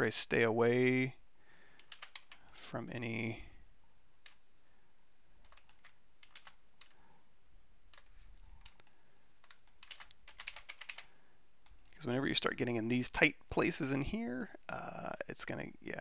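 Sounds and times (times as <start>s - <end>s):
keyboard keys clicking: 1.8s - 2.4s, 5.4s - 7.0s, 7.9s - 11.8s.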